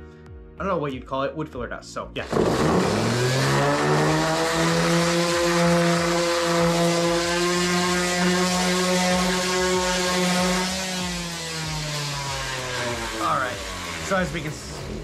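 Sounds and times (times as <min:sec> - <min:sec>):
electric orbital sander running: 0:02.2 - 0:15.0.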